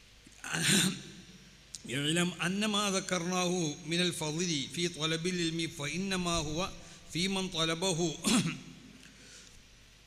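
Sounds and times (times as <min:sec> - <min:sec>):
man clearing his throat: 0:00.4 - 0:01.1, 0:08.2 - 0:08.7.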